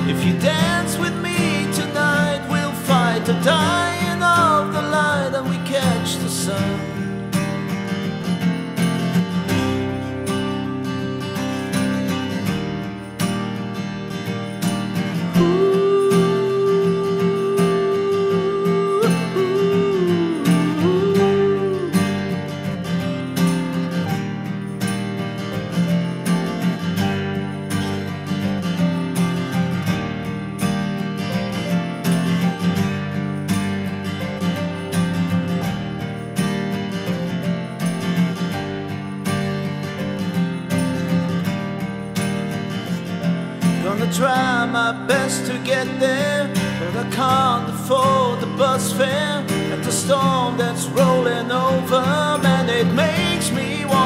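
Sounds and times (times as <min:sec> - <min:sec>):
acoustic guitar strumming: 0:00.0 - 0:54.0
hand percussion ticking: 0:00.0 - 0:54.0.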